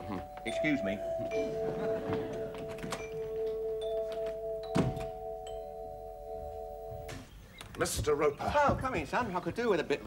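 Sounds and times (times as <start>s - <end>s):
doorbell ringing steady tone: 0.0s - 7.3s
door thunking shut: 4.6s - 5.2s.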